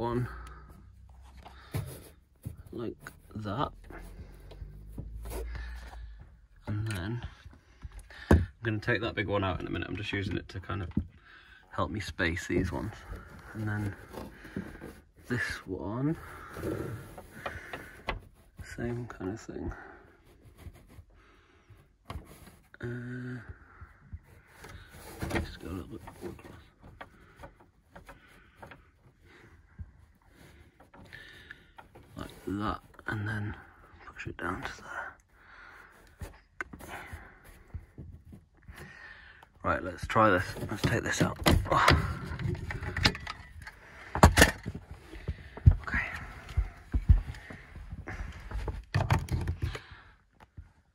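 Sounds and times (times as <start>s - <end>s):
plastic scraping: 12.3s - 18.9s, 24.4s - 34.8s, 40.0s - 50.0s.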